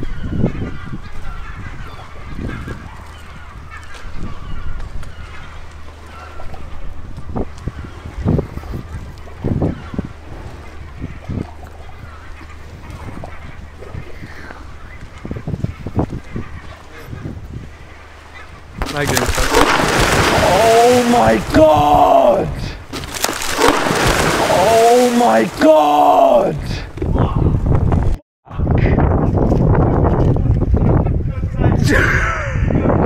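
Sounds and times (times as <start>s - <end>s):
wooden planks creaking: 18.8s - 21.9s, 22.8s - 26.3s.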